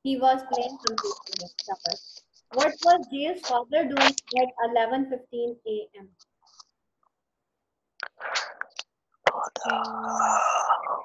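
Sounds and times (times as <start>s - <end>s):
person whispering: 0.4s - 4.5s, 8.0s - 11.0s.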